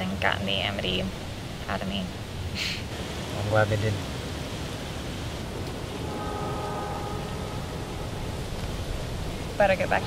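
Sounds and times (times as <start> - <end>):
outdoor background hiss: 0.0 - 10.0
faint held pitched tone: 6.0 - 8.7.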